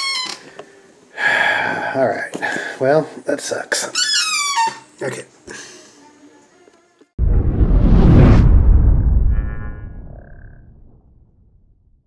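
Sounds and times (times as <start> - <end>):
deep low boom: 7.2 - 12.0.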